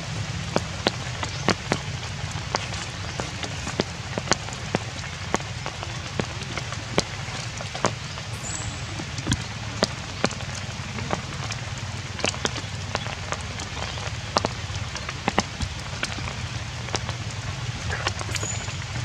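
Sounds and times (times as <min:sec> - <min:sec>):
rain falling on leaves and grass: 0:00.0 - 0:19.0.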